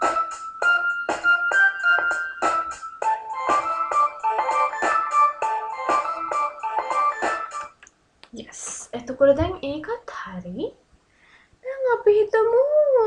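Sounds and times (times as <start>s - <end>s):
hip-hop drum loop: 0.0s - 7.7s
keyboard-like melodic loop: 0.0s - 7.8s.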